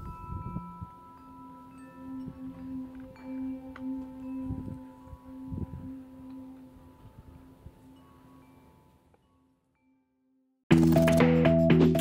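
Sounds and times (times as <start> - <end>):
soft chime-like background music: 0.0 - 11.2.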